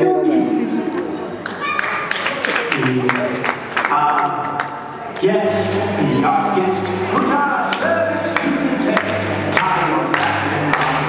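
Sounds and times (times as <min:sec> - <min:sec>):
audience applauding: 0:01.4 - 0:05.3, 0:06.8 - 0:11.0
sharp individual claps: 0:07.7 - 0:11.0.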